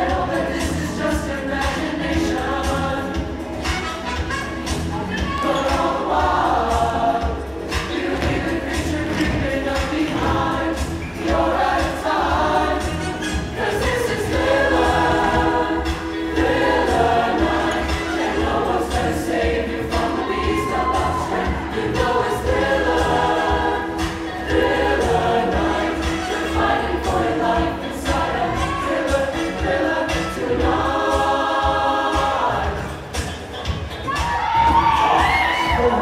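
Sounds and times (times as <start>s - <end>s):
choir singing: 0.0s - 4.0s, 4.7s - 33.4s, 34.8s - 36.0s.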